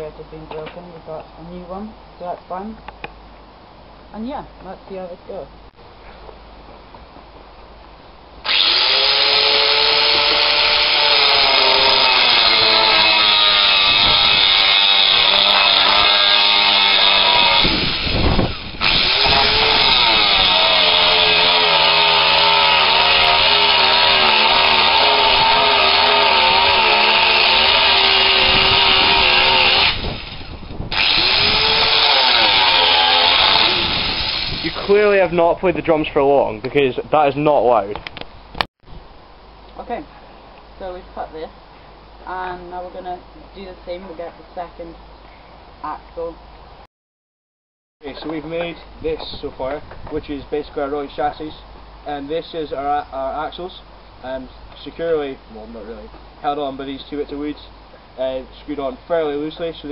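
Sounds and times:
angle grinder cutting metal: 8.4 - 35.0.

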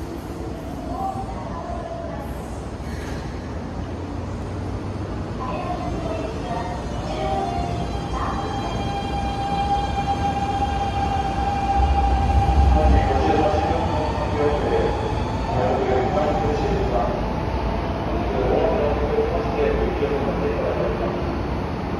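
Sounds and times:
train accelerating rumble: 0.0 - 21.9
train inverter whine: 3.5 - 21.9.

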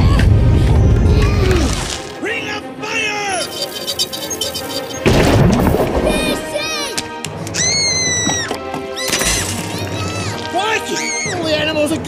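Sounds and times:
dramatic music: 0.1 - 12.0.

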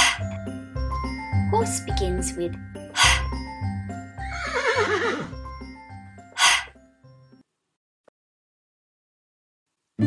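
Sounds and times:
light background music: 0.0 - 7.5
horse whinnying: 4.2 - 5.4.

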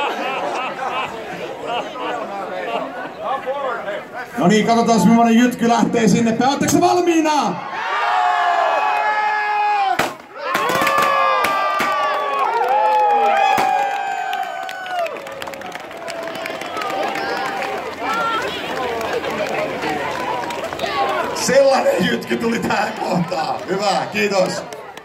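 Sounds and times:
crowd cheering and shrieking: 7.6 - 25.0
confetti cannons popping: 10.0 - 12.0, 13.5 - 14.0.

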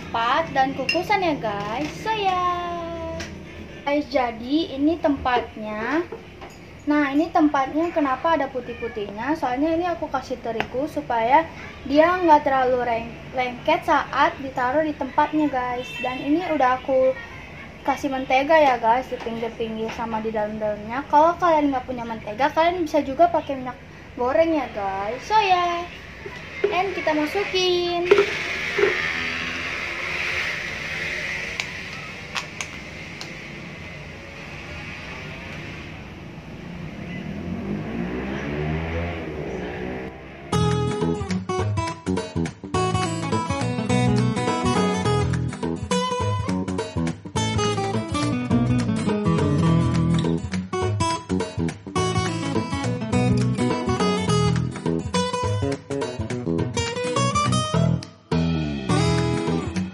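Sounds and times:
acoustic guitar music: 40.5 - 59.9.

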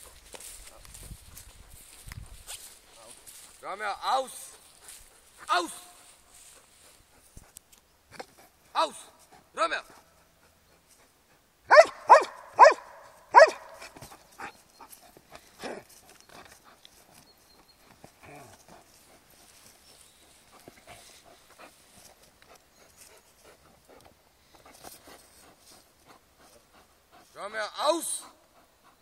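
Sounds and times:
dog barking: 11.7 - 14.0.

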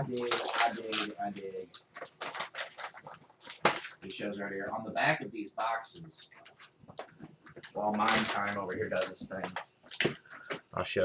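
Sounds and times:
packaging rustling and scraping: 0.0 - 4.1, 5.8 - 10.6.

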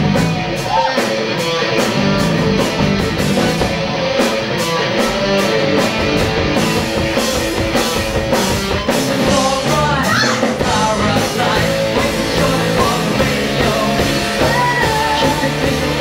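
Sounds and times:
distorted electric guitars: 0.0 - 16.0
drums keeping a steady beat: 0.0 - 16.0.

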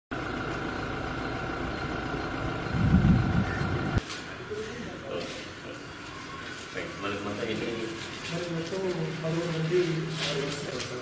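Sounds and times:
mechanical hum with rumble: 0.1 - 4.5
high whine: 0.2 - 4.0.

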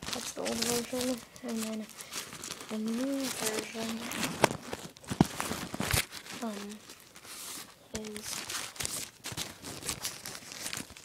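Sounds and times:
plastic wrappers crinkling: 0.0 - 11.0.

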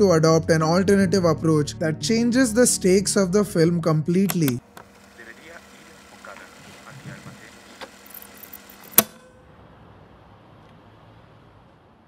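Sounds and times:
sharp click: 8.8 - 9.3.

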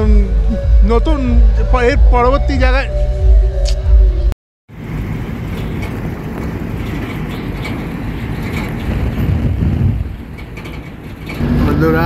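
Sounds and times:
moving vehicle rumble: 0.0 - 12.0
wind noise: 0.0 - 12.0.

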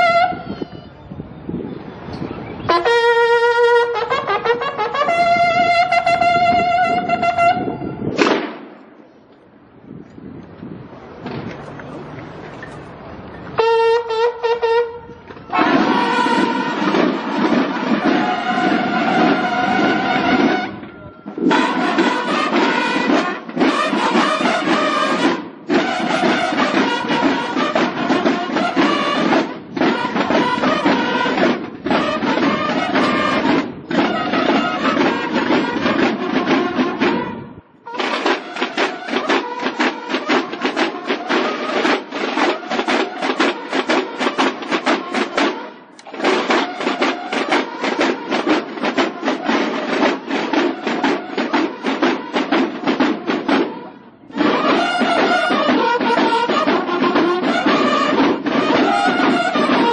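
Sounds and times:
bugles playing a march: 0.0 - 1.0, 2.6 - 8.8, 13.6 - 59.9
snare drums: 2.8 - 9.0, 15.4 - 59.9.

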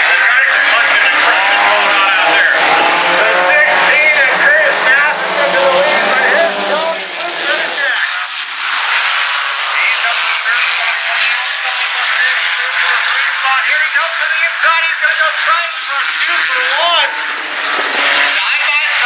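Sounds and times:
race car engines revving: 0.0 - 19.0.

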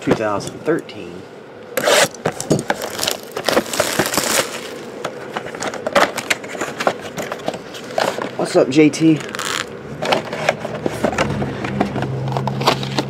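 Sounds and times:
plastic shrink wrap tearing: 1.8 - 4.8, 9.2 - 9.7
cardboard box opening: 1.8 - 8.4, 9.2 - 13.0.

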